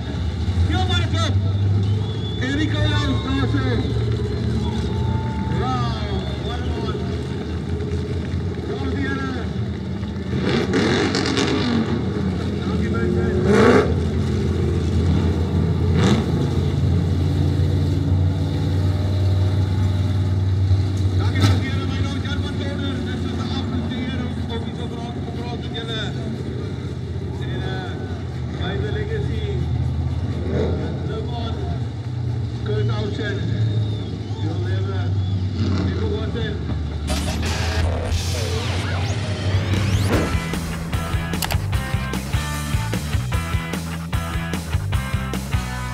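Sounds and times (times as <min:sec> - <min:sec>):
voices talking: 0:00.0 - 0:10.2, 0:19.5 - 0:45.9
car engine running at low revs: 0:00.0 - 0:45.9
brief sharp sounds: 0:37.1 - 0:43.1.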